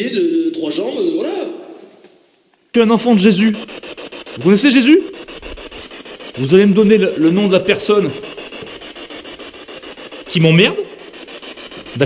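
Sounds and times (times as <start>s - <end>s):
scratchy rubbing noise: 2.8s - 12.0s.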